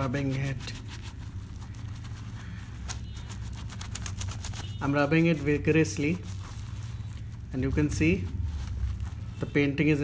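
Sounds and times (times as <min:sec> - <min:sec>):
wet soapy cloth scrubbed by hand: 0:00.0 - 0:09.5.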